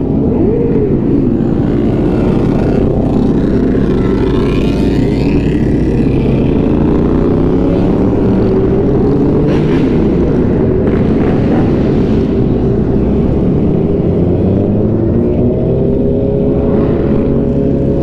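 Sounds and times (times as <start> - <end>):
motorcycle engine at speed: 0.0 - 18.0.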